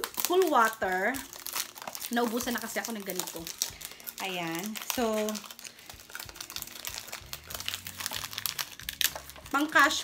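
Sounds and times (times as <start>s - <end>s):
packaging crinkling: 0.0s - 10.0s.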